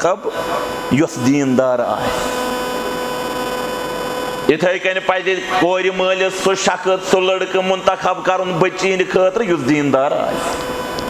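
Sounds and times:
speech: 0:00.0 - 0:02.1, 0:04.5 - 0:10.6
constant whine: 0:00.0 - 0:11.0
electrical hum and hiss: 0:00.0 - 0:11.0.

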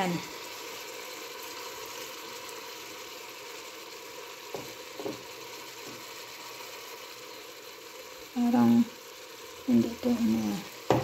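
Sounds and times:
chicken sizzling in pot: 0:00.0 - 0:11.0.

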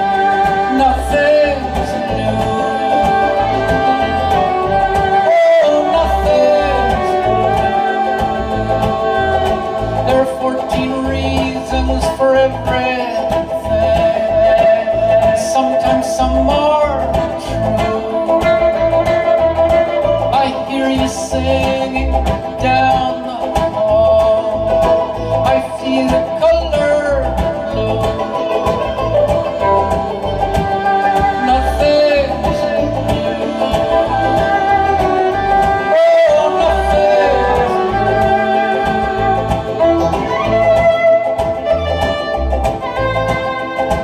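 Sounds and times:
banjo: 0:00.0 - 0:44.0
fiddle melody: 0:00.0 - 0:44.0
guitar: 0:00.0 - 0:44.0.

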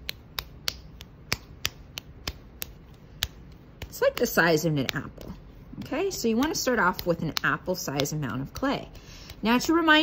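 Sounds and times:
clay slapped between palms: 0:00.0 - 0:10.0.

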